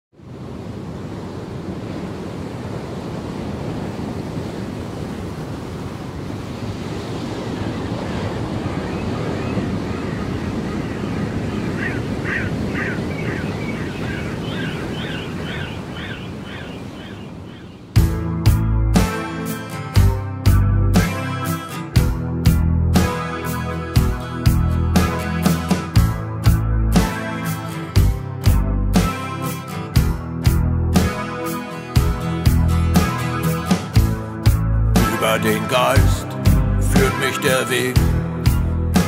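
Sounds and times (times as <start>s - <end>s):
ocean surf rushing: 0.2s - 20.1s, 23.0s - 28.4s, 29.0s - 39.0s.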